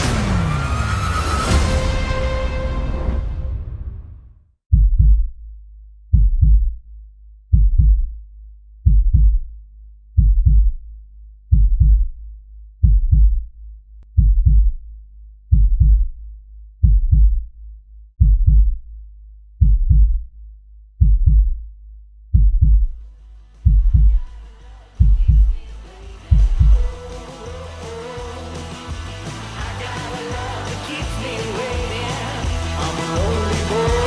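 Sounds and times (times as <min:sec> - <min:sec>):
heartbeat-style double thump: 0:04.7 - 0:05.4, 0:06.1 - 0:06.8, 0:07.5 - 0:08.2, 0:08.8 - 0:09.6, 0:10.2 - 0:10.9, 0:11.5 - 0:12.2, 0:12.8 - 0:14.9, 0:15.5 - 0:16.2, 0:16.8 - 0:17.5, 0:18.2 - 0:18.9, 0:19.6 - 0:20.4, 0:21.0 - 0:21.7, 0:22.3 - 0:23.0, 0:23.6 - 0:24.3, 0:25.0 - 0:25.6, 0:26.3 - 0:27.0.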